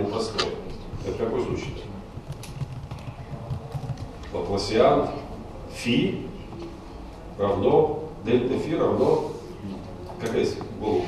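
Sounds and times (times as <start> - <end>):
computer keyboard keys clicking: 2.2 - 4.2.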